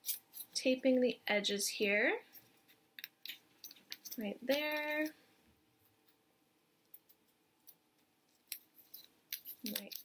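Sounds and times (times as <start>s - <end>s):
tape crinkling and clicking: 6.9s - 10.0s.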